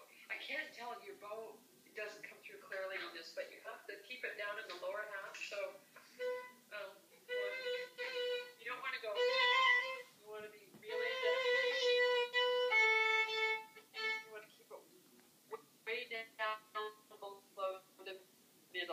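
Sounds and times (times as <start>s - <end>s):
violin playing trills: 6.2s - 6.6s, 7.2s - 10.1s, 10.9s - 14.4s.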